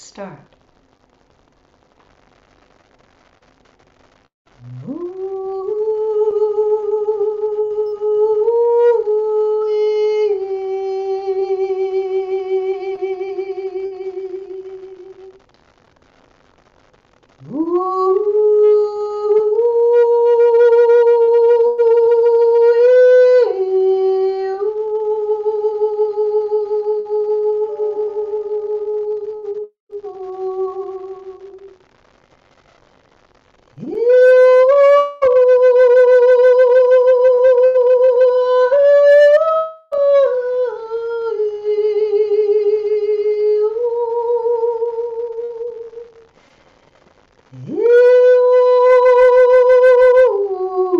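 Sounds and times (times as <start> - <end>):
woman singing long held note: 4.6 - 15.4, 17.4 - 31.8, 33.8 - 46.2, 47.6 - 50.9.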